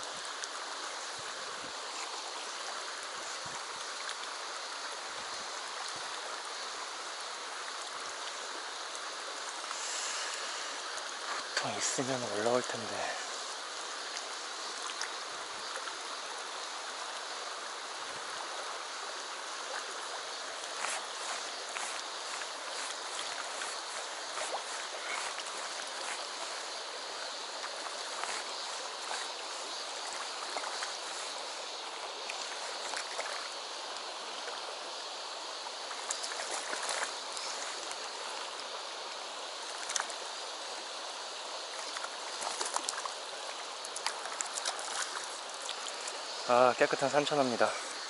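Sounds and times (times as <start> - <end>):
river rushing over stones: 0.0 - 48.0.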